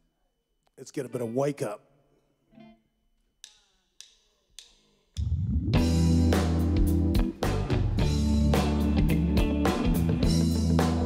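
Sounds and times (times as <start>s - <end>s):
live reggae band playing: 5.7s - 11.0s.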